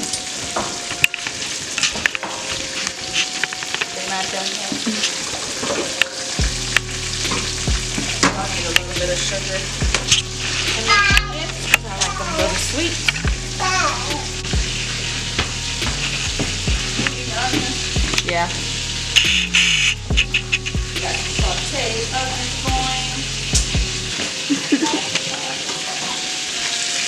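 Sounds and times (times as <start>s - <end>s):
onions sizzling in a frying pan: 0.0s - 27.0s
background music with bass beat: 6.4s - 24.2s.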